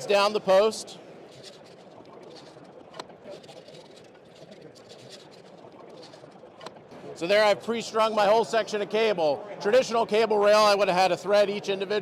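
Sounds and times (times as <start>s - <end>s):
distant voices in a hall: 0.0s - 12.0s.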